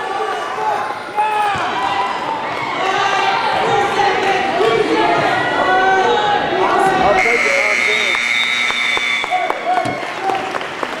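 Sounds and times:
crowd voices: 0.0 - 11.0
high steady signal tone: 7.1 - 9.4
sharp claps: 8.0 - 11.0.

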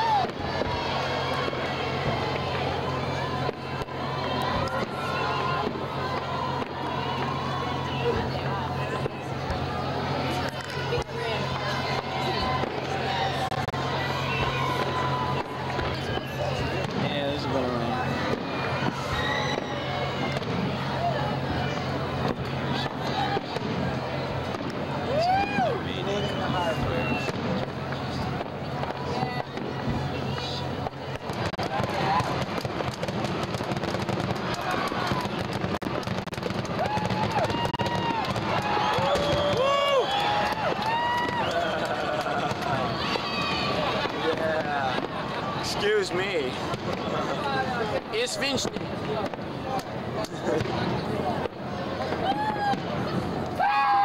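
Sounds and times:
fireworks bangs and crackling: 0.0 - 54.0
people's voices: 0.0 - 54.0.

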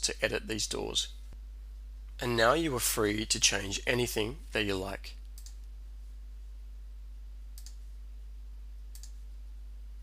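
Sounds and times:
low electrical hum: 0.0 - 10.0
computer mouse clicks: 5.4 - 5.7, 7.6 - 7.8, 8.9 - 9.2.

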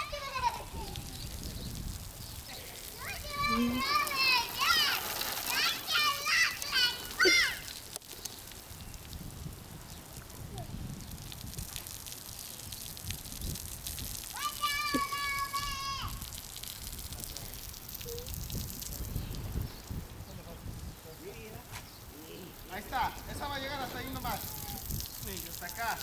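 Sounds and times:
child's long shout: 0.0 - 1.1, 3.0 - 7.7, 14.3 - 16.2, 24.4 - 24.9
sprinkler spraying water: 0.0 - 26.0.

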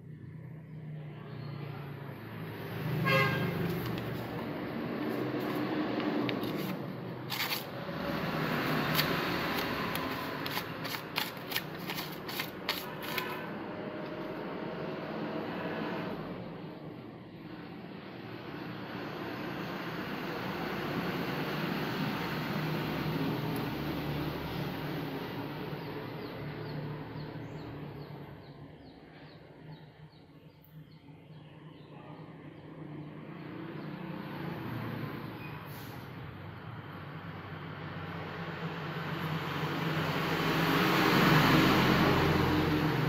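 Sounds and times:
knife slicing paper: 6.3 - 8.0, 8.6 - 13.5.

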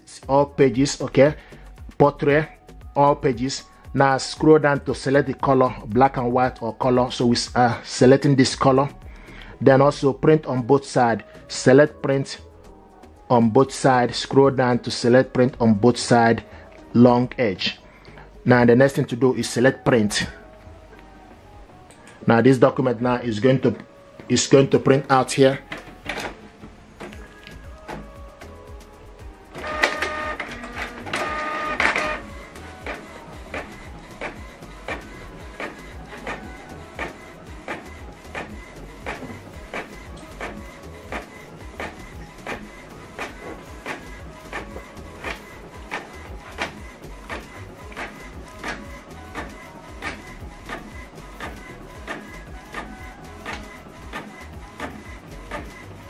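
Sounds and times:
printer motors whirring: 23.5 - 56.0.

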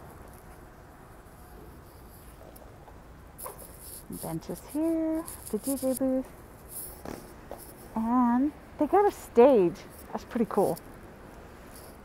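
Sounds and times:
person speaking: 4.0 - 6.3, 8.0 - 10.8.

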